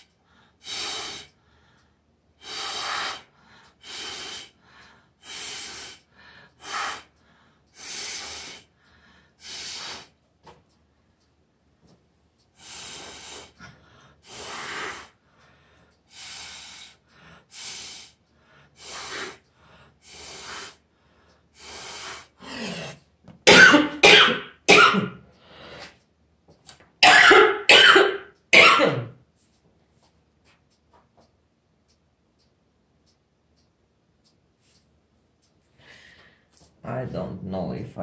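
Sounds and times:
short noisy breaths: 0.0 - 10.2, 12.5 - 23.1, 25.4 - 26.0, 35.7 - 36.6
person coughing: 23.5 - 25.2, 27.0 - 29.2.

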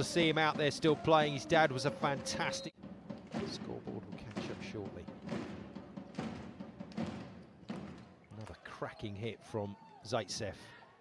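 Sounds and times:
drumbeats: 0.0 - 8.4.

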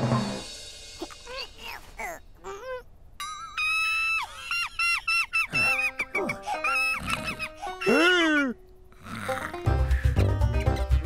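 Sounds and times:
high-pitched cartoon squeaks: 1.0 - 8.6.

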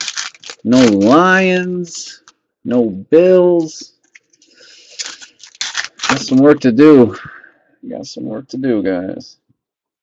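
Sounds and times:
cards shuffling: 0.0 - 1.4, 3.6 - 6.5.

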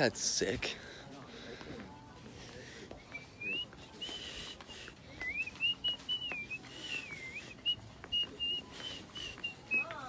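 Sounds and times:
person whistling a tune: 5.2 - 10.0.

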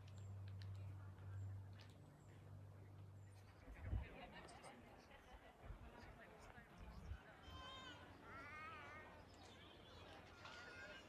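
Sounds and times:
distant voices of people: 0.0 - 11.0.

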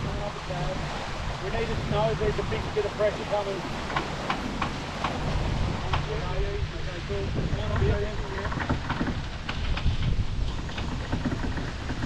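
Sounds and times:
sharp water splashes: 0.0 - 7.4
water rushing along hull: 0.0 - 12.0
wind rumbling on microphone: 0.0 - 12.0.

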